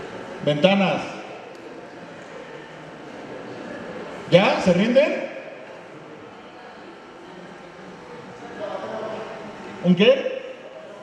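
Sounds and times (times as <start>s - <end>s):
audience murmuring in a hall: 0.0s - 11.0s.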